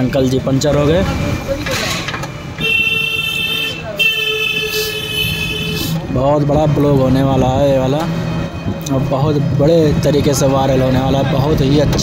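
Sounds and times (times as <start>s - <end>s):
road traffic noise: 0.0s - 12.0s
vehicle horn honking: 2.6s - 6.0s.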